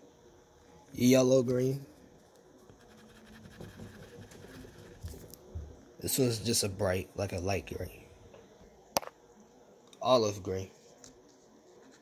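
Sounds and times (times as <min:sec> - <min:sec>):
crayon scribbling on paper: 0:02.8 - 0:05.3.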